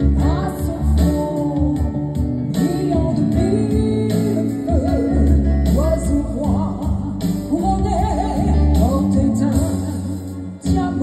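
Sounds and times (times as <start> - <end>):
woman singing into a microphone: 0.0 - 11.0.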